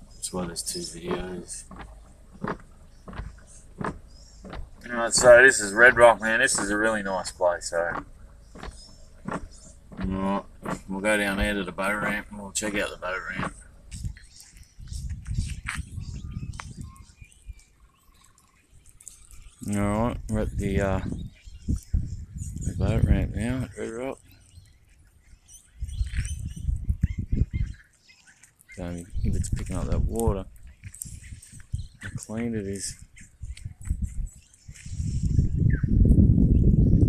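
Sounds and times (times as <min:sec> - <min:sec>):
vehicle cabin rumble: 0:00.0 - 0:24.7, 0:28.8 - 0:37.0
wind buffeting microphone: 0:00.0 - 0:27.9, 0:28.8 - 0:37.0
faint bird chirps: 0:12.8 - 0:29.6.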